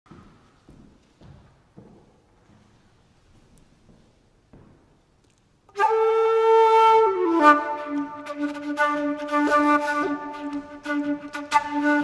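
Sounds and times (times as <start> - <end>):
wooden flute: 5.7 - 12.0.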